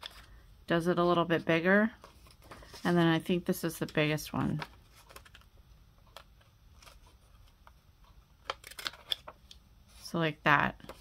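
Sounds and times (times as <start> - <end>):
paper rustling: 2.0 - 5.4.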